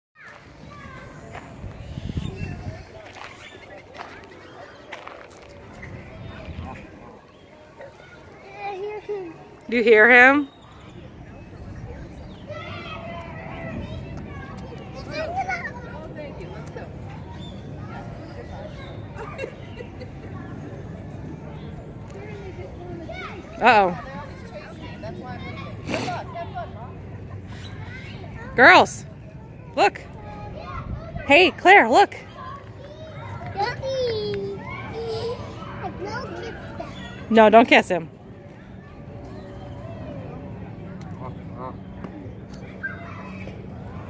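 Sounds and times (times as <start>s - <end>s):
children chattering: 0.2s - 44.0s.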